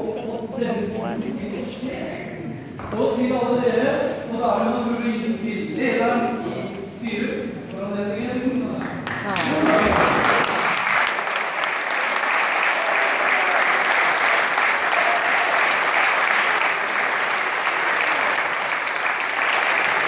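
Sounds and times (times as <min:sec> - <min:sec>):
crowd applauding: 0:08.9 - 0:20.0.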